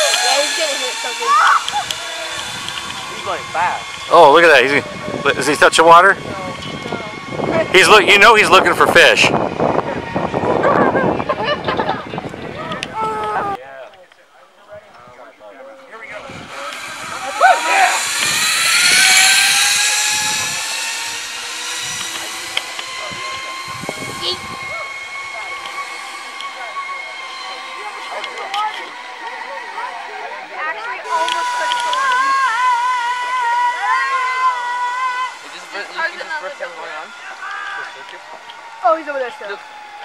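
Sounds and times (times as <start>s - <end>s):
zip-line pulleys whirring: 0.0s - 13.6s, 15.6s - 40.0s.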